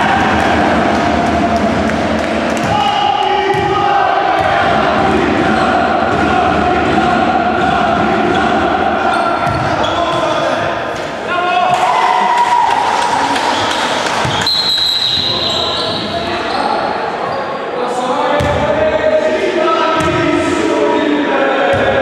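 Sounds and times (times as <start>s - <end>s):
players calling out: 0.0s - 18.7s.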